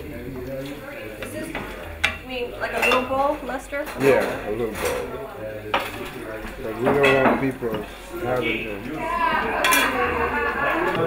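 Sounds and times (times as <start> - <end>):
utensils clinking against stockpot: 2.8 - 3.3, 6.8 - 8.5, 9.6 - 10.0.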